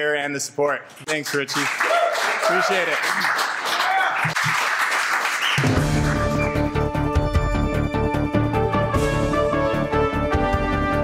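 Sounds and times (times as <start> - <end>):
hands clapping: 1.0 - 6.6
theme music sting with beat: 5.6 - 9.6.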